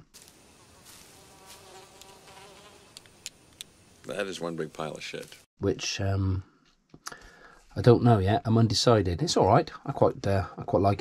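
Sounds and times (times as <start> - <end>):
flies buzzing: 0.0 - 5.5.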